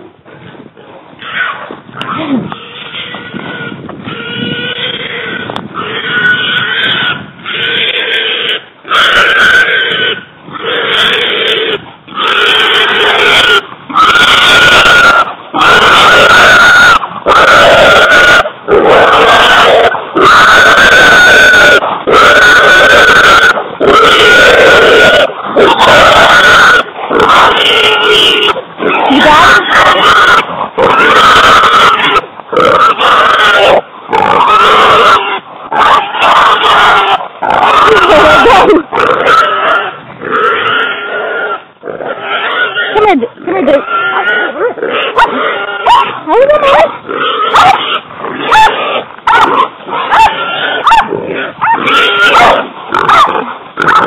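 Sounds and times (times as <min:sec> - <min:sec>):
hog squealing: 0:01.2 - 0:54.0.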